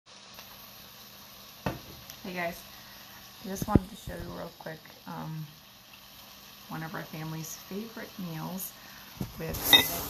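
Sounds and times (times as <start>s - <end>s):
vegetables sizzling in a frying pan: 0.1s - 10.0s.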